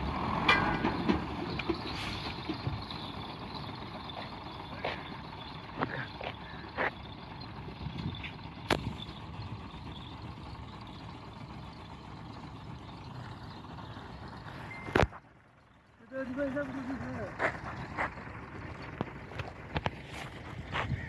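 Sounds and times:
diesel engine running: 0:00.0 - 0:21.0.

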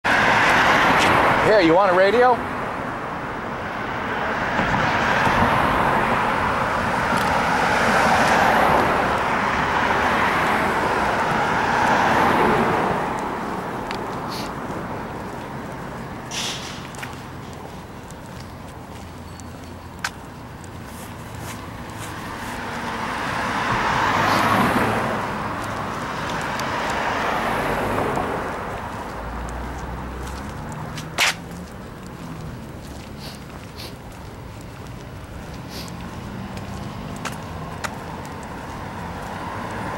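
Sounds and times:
cars driving past: 0:00.0 - 0:39.9
street traffic rumble: 0:00.0 - 0:39.9
faint footsteps: 0:11.2 - 0:39.9.

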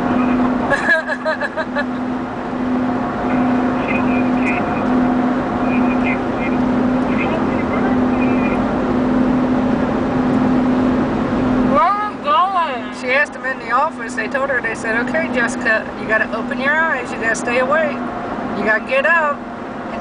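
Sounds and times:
low engine drone: 0:00.0 - 0:20.0
road and wind noise: 0:00.0 - 0:20.0.

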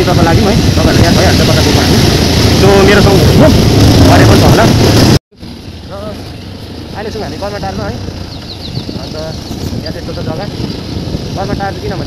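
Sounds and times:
motorcycle engine running: 0:00.0 - 0:12.0
road noise: 0:00.0 - 0:12.0
wind buffeting microphone: 0:00.0 - 0:12.0.

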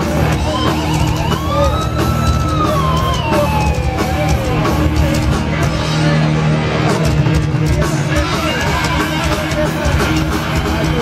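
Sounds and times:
pounding drums: 0:00.0 - 0:06.1, 0:06.8 - 0:11.0
distorted guitars: 0:00.0 - 0:11.0
metal band playing live: 0:00.0 - 0:11.0.

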